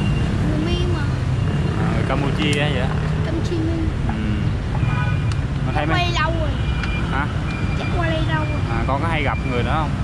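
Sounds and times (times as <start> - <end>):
city traffic rumble: 0.0 - 10.0
voices: 0.4 - 4.8, 5.6 - 10.0.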